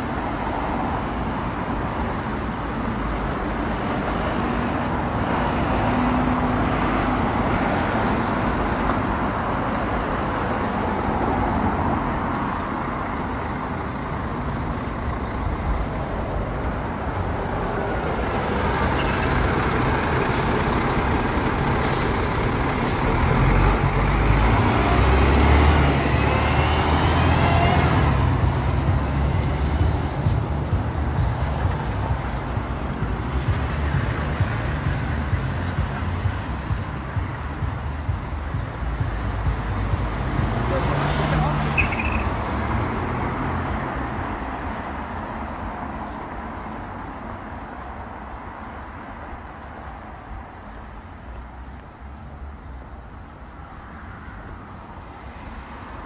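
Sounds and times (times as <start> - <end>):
bus engine whine and rumble: 0.0 - 56.0
road traffic passing: 0.0 - 56.0
air brake hiss: 21.8 - 23.2.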